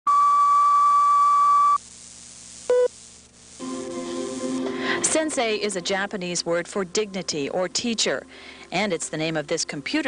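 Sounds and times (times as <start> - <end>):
faint tape hiss: 0.1 - 10.0.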